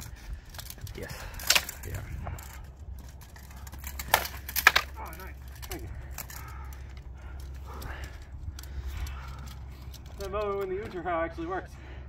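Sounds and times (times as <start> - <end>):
wind rumble on microphone: 0.0 - 4.0.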